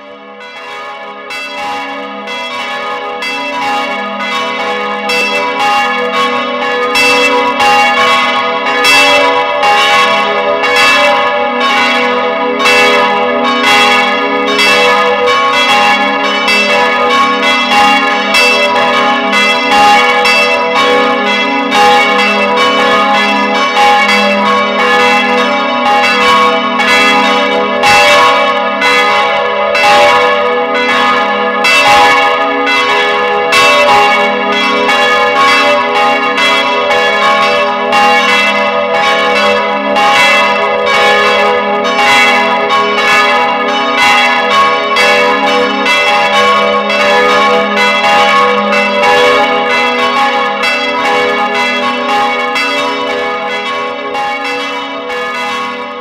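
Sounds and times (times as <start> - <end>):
church bells pealing: 0.0 - 56.0.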